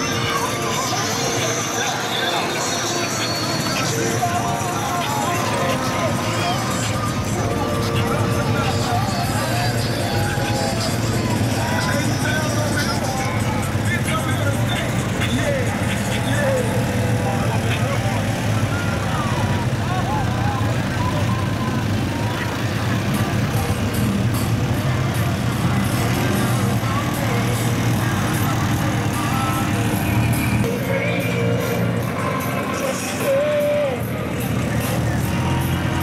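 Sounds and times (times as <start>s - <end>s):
indistinct voices: 0.0s - 36.0s
low engine drone of vehicles: 0.0s - 36.0s.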